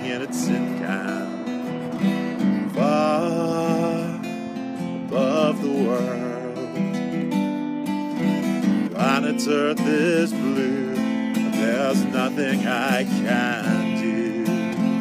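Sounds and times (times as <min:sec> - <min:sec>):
man singing: 0:00.0 - 0:07.3, 0:08.6 - 0:15.0
acoustic guitar strumming: 0:00.0 - 0:15.0.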